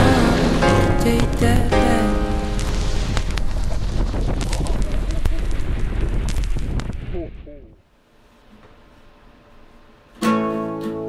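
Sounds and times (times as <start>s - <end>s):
wind on microphone: 2.5s - 7.8s.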